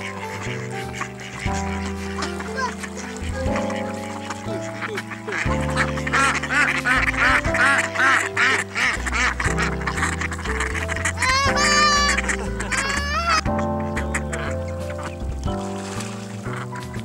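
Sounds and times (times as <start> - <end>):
background music: 0.0 - 17.0
ducks quacking: 0.0 - 17.0.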